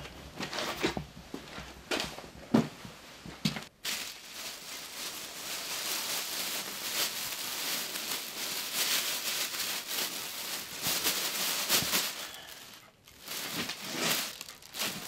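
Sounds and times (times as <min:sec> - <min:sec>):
plastic bag rustling and crinkling: 0:03.6 - 0:15.0.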